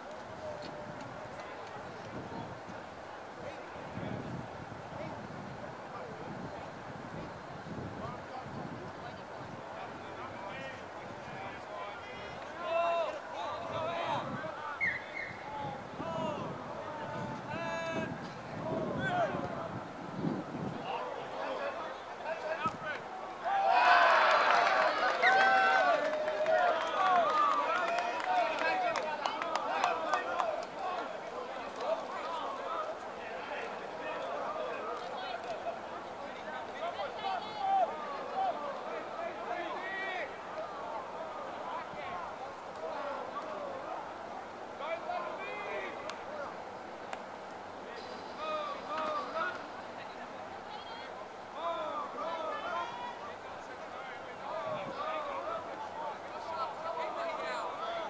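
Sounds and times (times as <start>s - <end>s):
voices shouting and calling: 6.0s - 58.0s
sharp claps: 24.4s - 31.1s.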